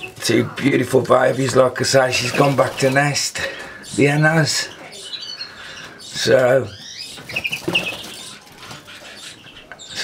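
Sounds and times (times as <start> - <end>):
birds chirping: 0.0 - 10.0.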